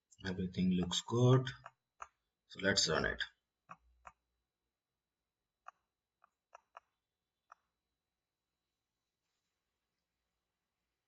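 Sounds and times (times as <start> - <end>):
person speaking: 0.1 - 3.7
computer mouse clicks: 5.6 - 7.7.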